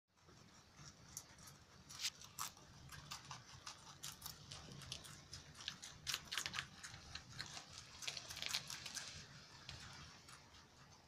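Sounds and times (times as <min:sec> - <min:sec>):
rabbits chewing greens: 0:00.1 - 0:11.0.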